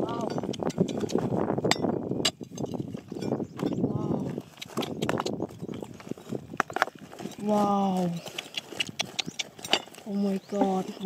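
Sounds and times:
stones crunching: 0.9 - 11.0.

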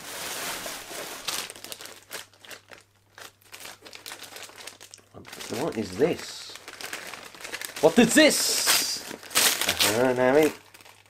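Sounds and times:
wrapping paper rustling: 0.0 - 11.0.

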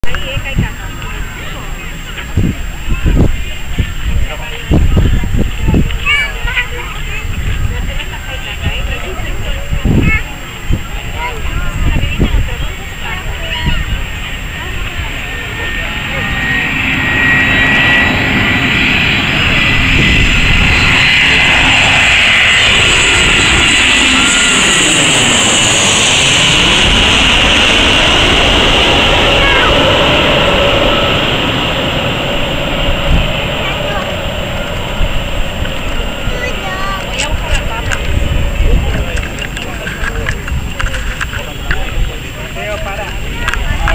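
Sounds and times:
jet airliner passing overhead: 0.0 - 43.9.

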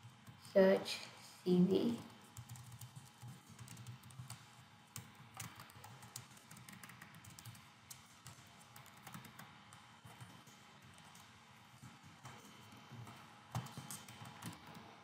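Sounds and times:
faint keyboard typing: 0.0 - 0.8, 1.5 - 15.0.

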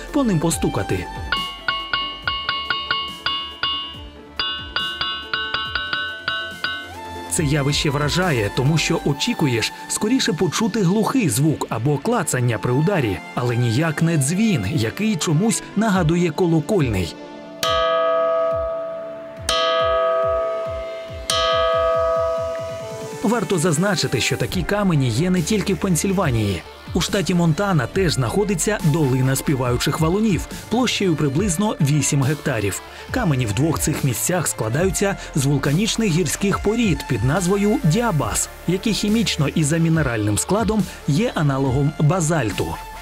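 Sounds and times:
rocks ringing when struck: 1.3 - 7.0.

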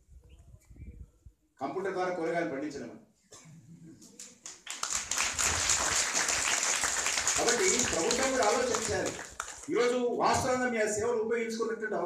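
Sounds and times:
audience applauding: 4.4 - 9.8.

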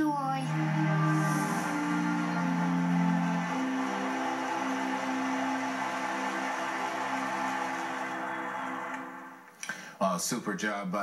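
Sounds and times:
soft instrumental music on tv speaker: 0.0 - 9.7.

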